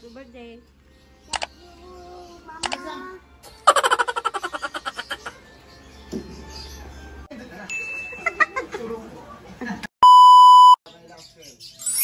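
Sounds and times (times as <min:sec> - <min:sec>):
electronic beep tone: 0:10.0 - 0:10.8.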